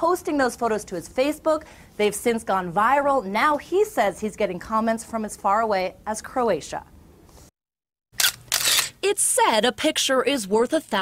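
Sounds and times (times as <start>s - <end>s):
camera shutter click: 8.2s - 9.0s.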